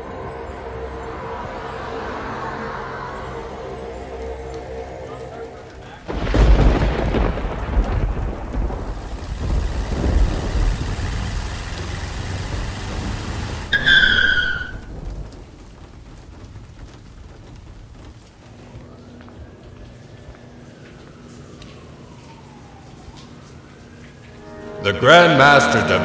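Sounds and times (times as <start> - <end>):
rain hissing: 0.0 - 24.8
thunder rumbling: 2.8 - 24.8.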